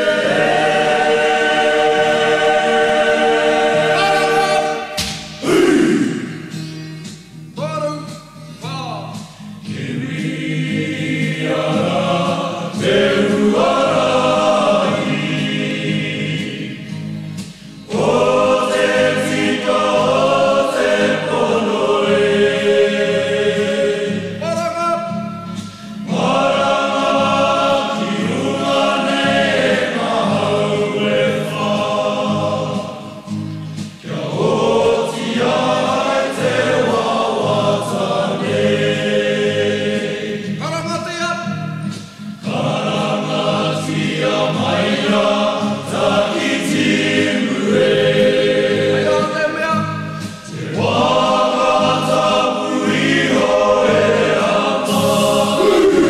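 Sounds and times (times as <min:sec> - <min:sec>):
choir singing: 0:00.0 - 0:06.7, 0:09.6 - 0:24.5, 0:25.6 - 0:40.6, 0:42.4 - 0:56.0.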